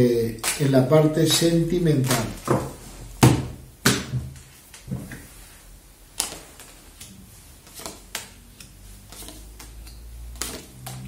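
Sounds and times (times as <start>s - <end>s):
cards tapping on a tabletop: 7.7s - 11.0s.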